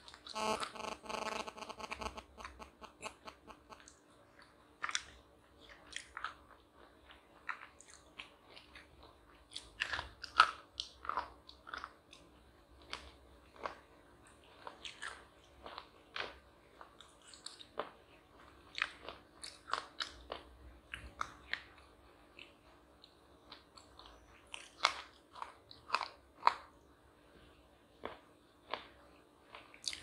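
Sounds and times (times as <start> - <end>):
crunchy chocolate being chewed: 0.0 - 26.8, 27.4 - 30.0.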